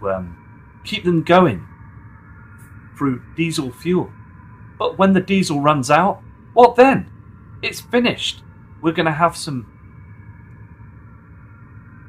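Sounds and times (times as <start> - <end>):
faint background hum: 0.0 - 12.0.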